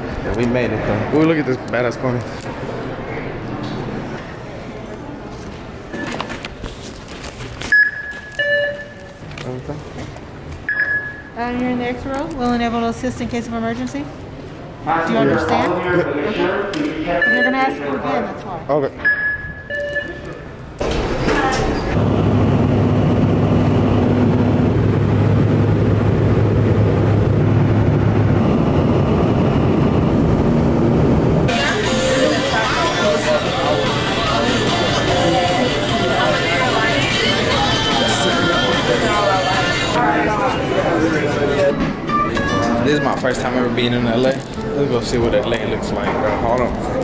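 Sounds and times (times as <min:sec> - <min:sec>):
scanner beep: 0:07.7 - 0:09.2, 0:10.7 - 0:11.4, 0:17.1 - 0:18.2, 0:19.0 - 0:20.3, 0:41.6 - 0:43.5
airliner cabin engine rush: 0:20.8 - 0:40.0
low hum: 0:21.8 - 0:40.0.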